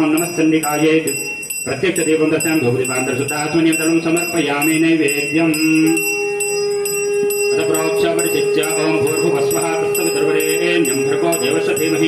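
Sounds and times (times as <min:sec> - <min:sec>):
man chanting: 0:00.0 - 0:06.4, 0:07.5 - 0:12.0
hand bell ringing: 0:00.0 - 0:12.0.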